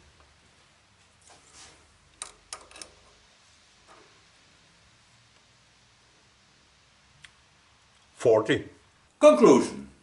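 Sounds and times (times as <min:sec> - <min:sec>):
soft rustle: 0:00.0 - 0:02.1.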